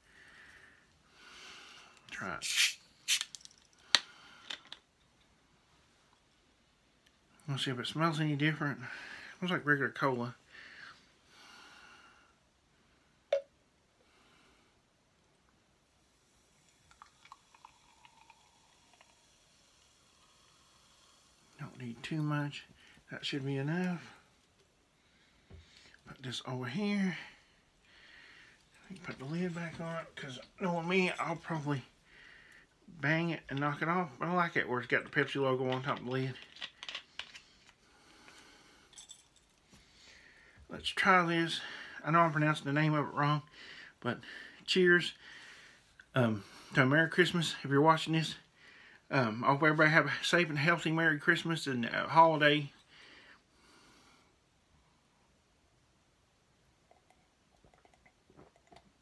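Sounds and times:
cola pouring into a glass mug: 16.4 - 21.5, 56.8 - 59.0.

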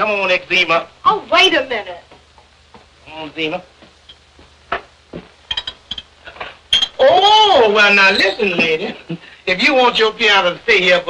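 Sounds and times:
glass bottle clinking: 5.5 - 6.1.

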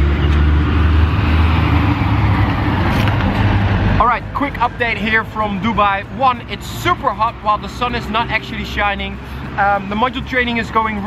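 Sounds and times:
diesel truck engine rumbling: 0.0 - 11.0
road traffic noise: 0.0 - 11.0.

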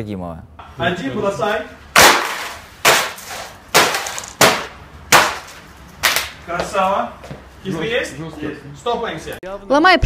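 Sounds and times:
laptop smashed on wooden floor: 2.0 - 6.3.

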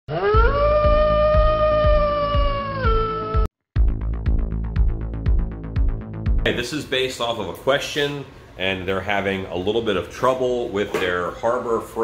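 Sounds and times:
cat yowling: 0.1 - 3.3
low thumping beat: 0.4 - 6.5.

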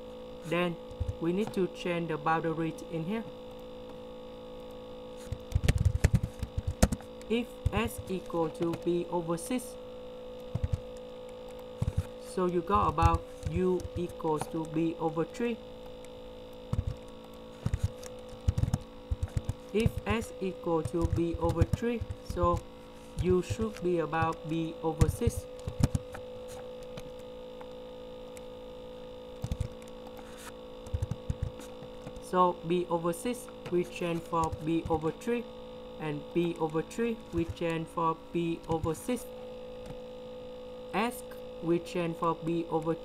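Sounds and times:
electrical mains hum: 0.0 - 43.0
soft low thumps: 5.3 - 8.8, 10.5 - 11.0, 11.7 - 12.2, 16.6 - 27.1.

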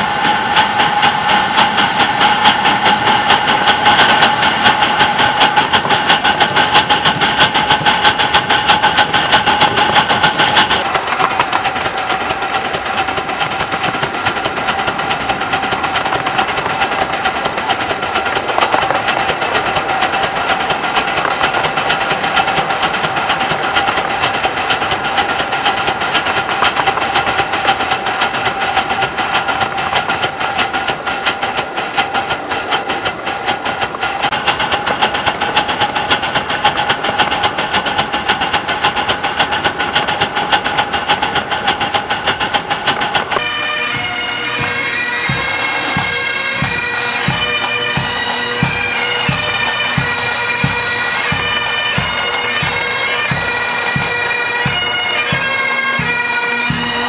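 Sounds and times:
hissing steam: 0.0 - 57.0
steam locomotive wheels clattering: 0.0 - 57.0.

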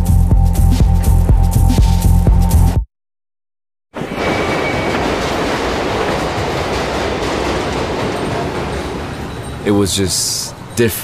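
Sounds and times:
train running on rails: 4.0 - 11.0.

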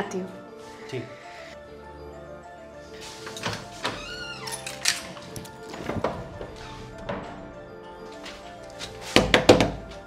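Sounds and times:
background music: 0.0 - 10.0
knocks on a door: 9.2 - 9.8.

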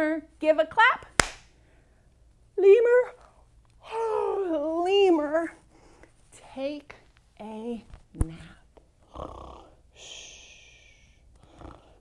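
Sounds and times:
woman pretend snoring: 9.1 - 9.8, 11.4 - 12.0.

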